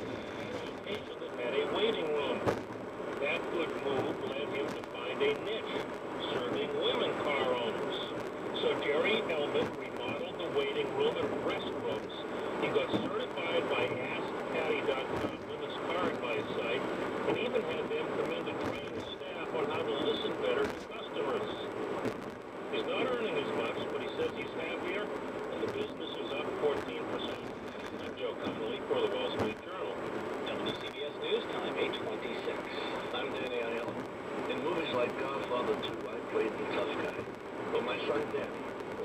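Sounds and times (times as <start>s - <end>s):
talk from car radio: 0.0s - 2.6s, 3.2s - 21.7s, 22.7s - 39.0s
road noise: 0.0s - 39.0s.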